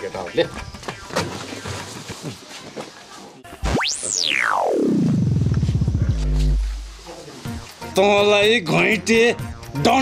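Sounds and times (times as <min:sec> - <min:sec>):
falling tone breaking into pulses: 0:03.6 - 0:06.9
low hum: 0:03.9 - 0:07.0.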